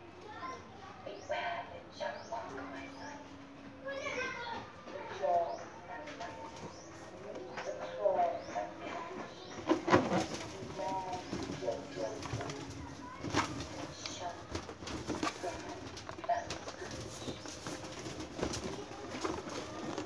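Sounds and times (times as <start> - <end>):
doves cooing: 5.4 - 20.0.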